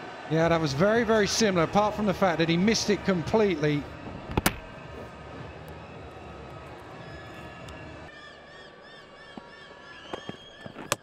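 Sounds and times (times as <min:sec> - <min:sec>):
low crowd noise: 0:00.0 - 0:11.0.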